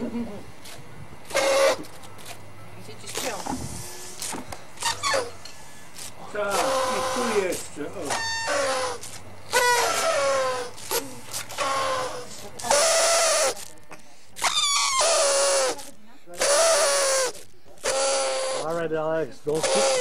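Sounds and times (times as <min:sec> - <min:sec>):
party horns tooting: 0:06.0 - 0:18.8, 0:19.5 - 0:20.0.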